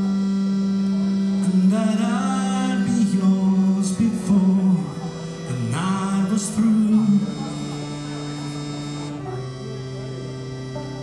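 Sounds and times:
sustained keyboard chords: 0:00.0 - 0:11.0.

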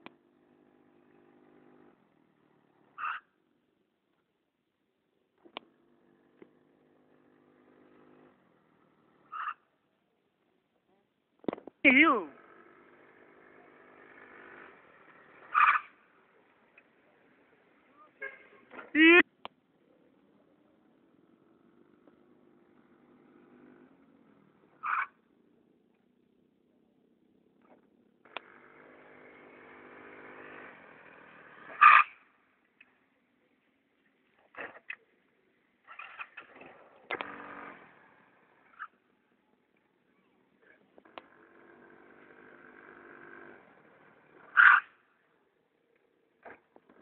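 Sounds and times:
scooter engine running: 0:00.0 - 0:03.6, 0:05.4 - 0:09.6, 0:11.9 - 0:19.3, 0:19.9 - 0:33.5, 0:34.2 - 0:47.0.

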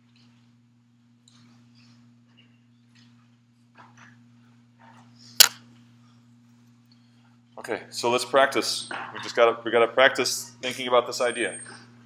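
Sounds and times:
steady low hum: 0:00.0 - 0:12.0
sharp click with echo: 0:05.4 - 0:05.6.

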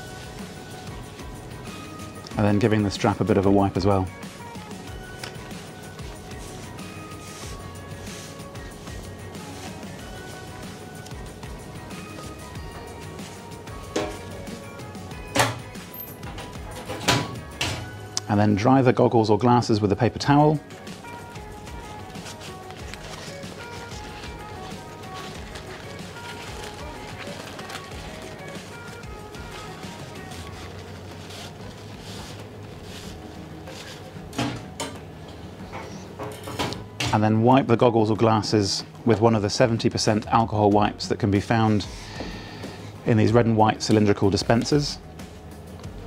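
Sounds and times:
soft background music: 0:00.0 - 0:46.0
paper towel rustling on plastic: 0:02.5 - 0:10.7, 0:20.8 - 0:34.2
handling noises: 0:20.7 - 0:37.1.

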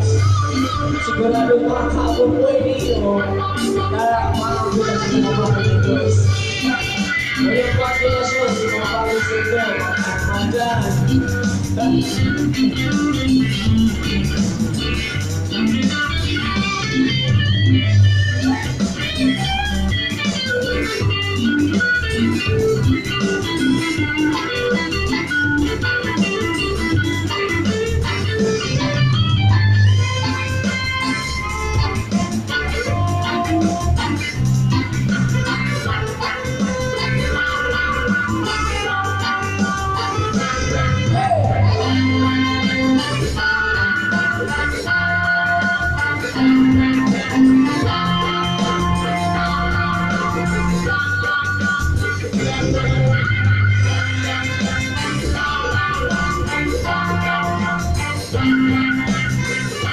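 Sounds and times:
reggae band playing: 0:00.0 - 0:59.9.

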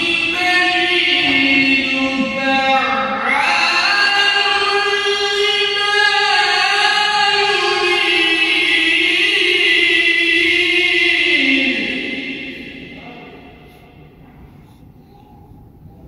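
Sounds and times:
man reciting melodically: 0:00.0 - 0:13.8.

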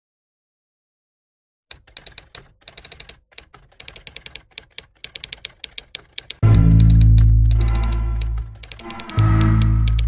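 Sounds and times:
typewriter keys clacking: 0:01.7 - 0:10.0.

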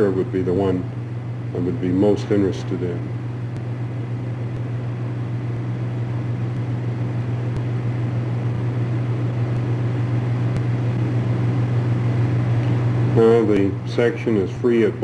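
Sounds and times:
constant hiss: 0:00.0 - 0:15.0
low hum: 0:00.0 - 0:15.0.

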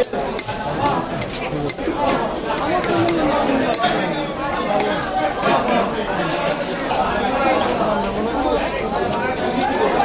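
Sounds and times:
market chatter: 0:00.0 - 0:10.0.

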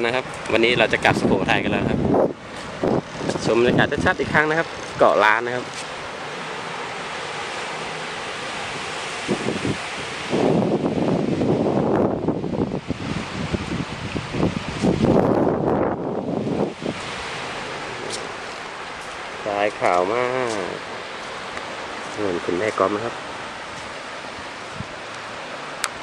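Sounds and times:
wind buffeting microphone: 0:00.0 - 0:06.6, 0:08.0 - 0:26.0
light surf: 0:00.0 - 0:26.0
wind: 0:00.0 - 0:26.0.

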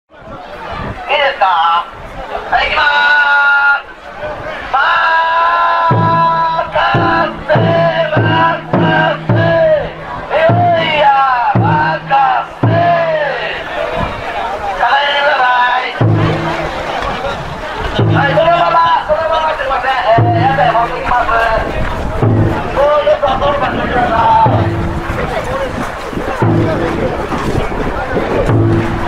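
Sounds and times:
crowd chanting rhythmically: 0:04.5 - 0:27.6
taiko drum beating: 0:05.8 - 0:13.6, 0:16.0 - 0:29.0.

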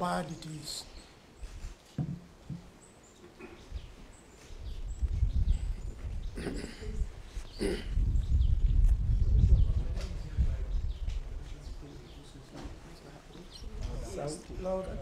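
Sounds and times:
man speaking: 0:00.0 - 0:00.9
man coughing: 0:06.4 - 0:08.0.

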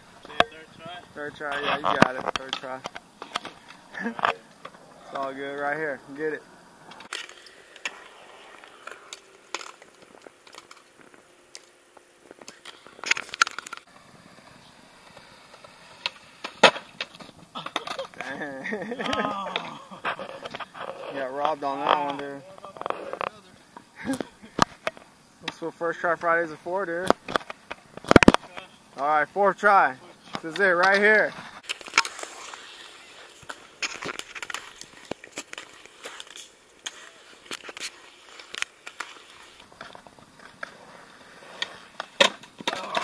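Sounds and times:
skateboard rolling on concrete: 0:00.0 - 0:43.0
skateboard wheel and deck clicks: 0:12.4 - 0:13.9, 0:27.0 - 0:28.7, 0:30.4 - 0:43.0
skateboard slamming down: 0:16.0 - 0:18.2, 0:41.5 - 0:43.0.

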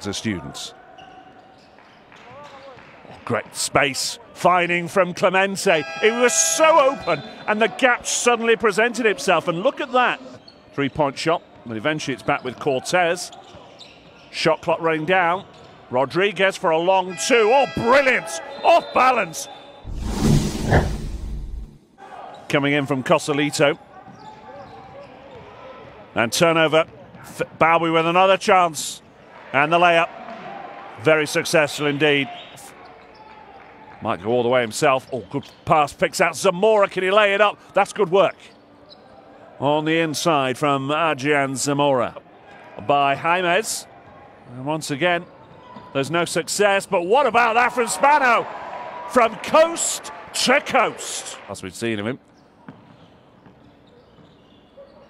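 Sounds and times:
faint arena background noise: 0:00.0 - 0:19.8, 0:21.9 - 0:55.0.

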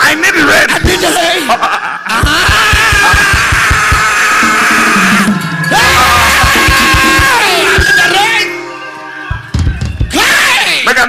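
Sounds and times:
praise music: 0:01.6 - 0:11.0
drum kit fast beat: 0:02.1 - 0:08.5, 0:09.3 - 0:10.4.

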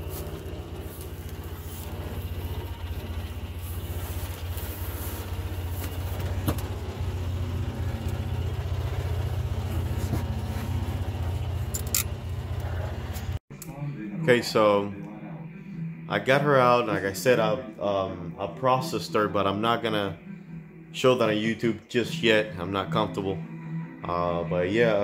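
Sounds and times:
utility vehicle engine running: 0:00.0 - 0:13.4
sharp clicks and rattles: 0:11.1 - 0:13.4.

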